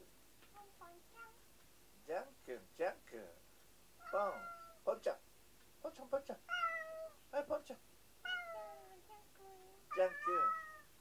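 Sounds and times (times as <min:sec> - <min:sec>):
cat meowing: 0:04.0 - 0:04.8, 0:06.5 - 0:07.2, 0:08.2 - 0:09.0, 0:09.9 - 0:10.9.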